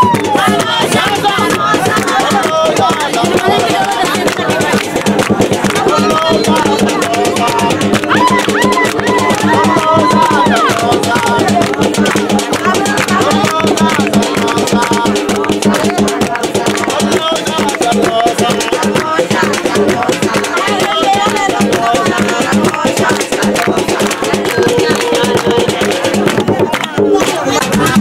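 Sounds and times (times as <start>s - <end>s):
hand clapping: 0.0s - 28.0s
voices singing: 0.0s - 28.0s.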